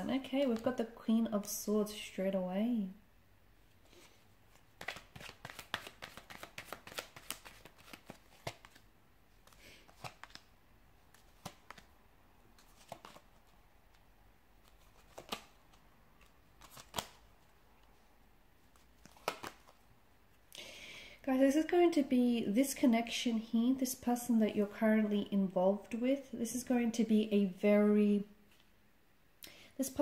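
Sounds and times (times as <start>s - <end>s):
cards flicking and tapping: 4.7s - 8.8s, 11.1s - 11.9s, 12.6s - 13.2s, 14.6s - 17.2s, 18.8s - 19.8s.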